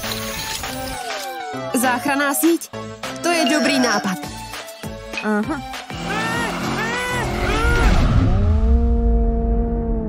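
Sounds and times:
cartoon car engine: 5.9s - 10.0s.

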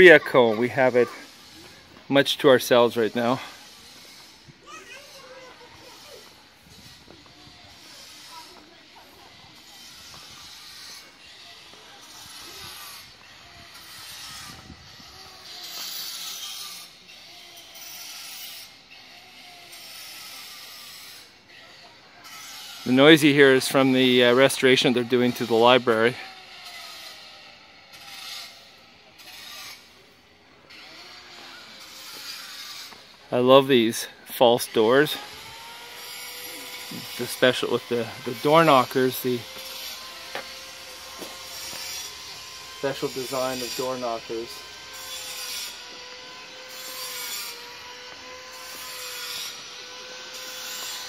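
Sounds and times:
distant power tool whine: 0.0s - 51.0s
rasping strokes: 0.0s - 51.0s.

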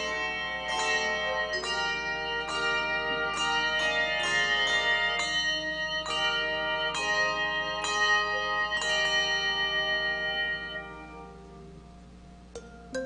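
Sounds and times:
handbell choir ringing chords: 0.0s - 11.7s.

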